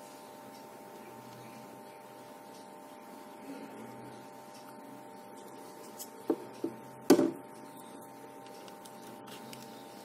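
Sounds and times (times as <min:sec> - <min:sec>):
faint steady hum: 0:00.0 - 0:10.0
knocks on wooden tabletop: 0:06.3 - 0:07.4.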